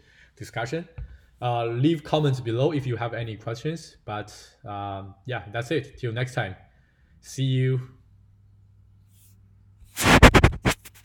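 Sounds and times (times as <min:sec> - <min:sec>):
scratchy rubbing noises: 0:10.0 - 0:11.0.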